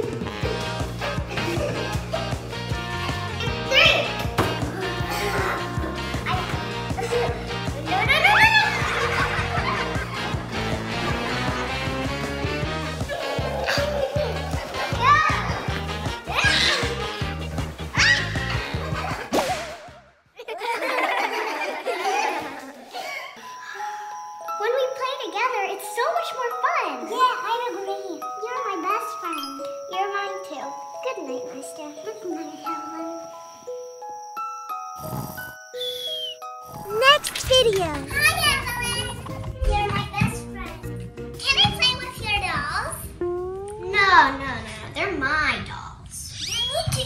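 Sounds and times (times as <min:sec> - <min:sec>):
music: 0:00.0 - 0:47.0
whip-like swish: 0:19.3 - 0:20.0
child's voice: 0:24.5 - 0:33.2, 0:36.8 - 0:40.8, 0:41.4 - 0:47.0.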